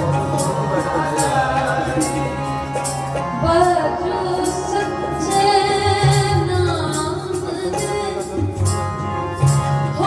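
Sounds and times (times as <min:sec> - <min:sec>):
harmonium: 0:00.0 - 0:10.0
woman singing: 0:03.3 - 0:08.5.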